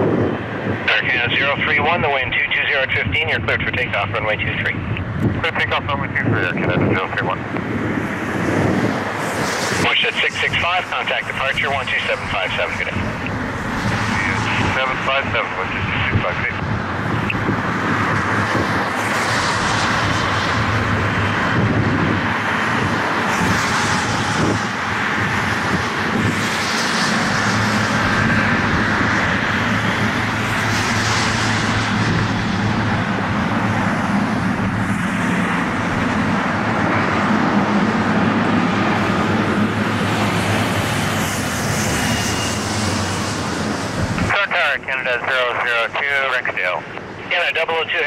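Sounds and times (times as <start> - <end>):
jet engine roar: 0.0 - 48.0.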